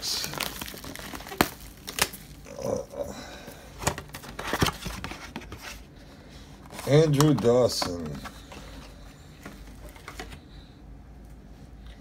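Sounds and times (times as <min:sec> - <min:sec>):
plastic wrapping crinkling: 0:00.0 - 0:02.8.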